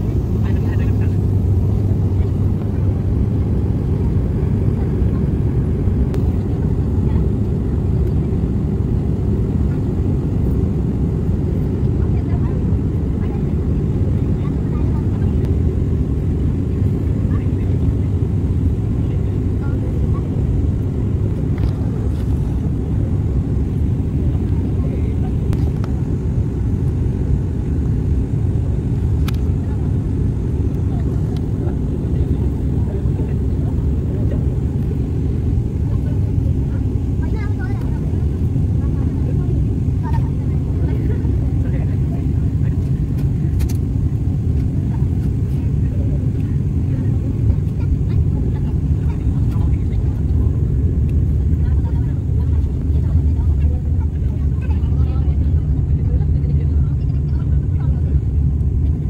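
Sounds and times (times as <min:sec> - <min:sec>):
airliner engine drone in cabin: 0:00.0 - 0:59.0.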